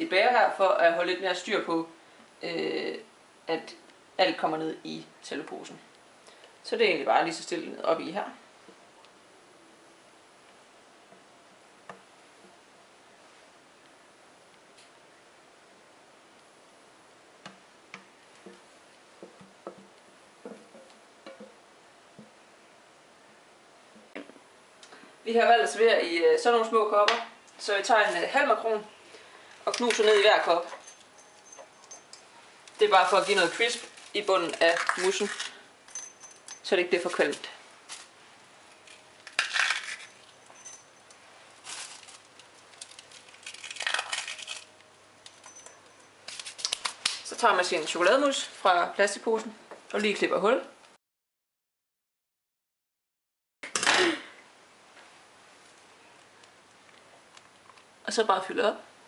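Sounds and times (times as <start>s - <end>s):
plastic bag crinkling: 32.7s - 35.6s, 38.8s - 40.7s, 41.5s - 45.5s, 46.3s - 47.3s
macarons crushed by hand: 33.2s - 35.6s, 39.2s - 40.1s, 41.6s - 44.7s, 46.3s - 47.3s.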